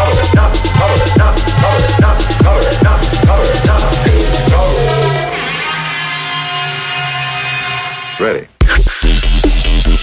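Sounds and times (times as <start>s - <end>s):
buzzing synthesizer tone: 0.0s - 10.0s.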